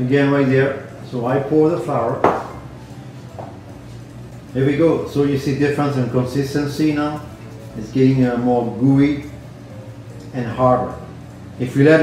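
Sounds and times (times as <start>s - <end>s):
utensil knocking glass bowl: 2.2s - 2.6s.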